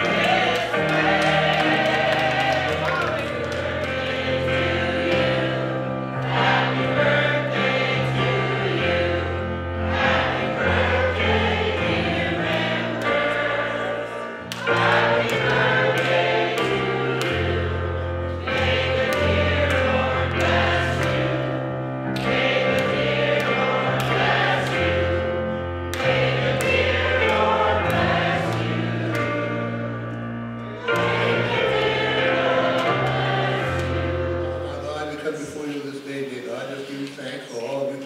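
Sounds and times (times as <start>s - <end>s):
choir singing: 0.0s - 35.7s
church organ: 0.0s - 38.0s.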